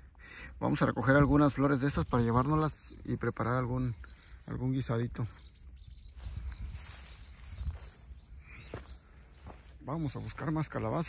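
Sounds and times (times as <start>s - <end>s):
wind rumbling on microphone: 5.1s - 9.6s.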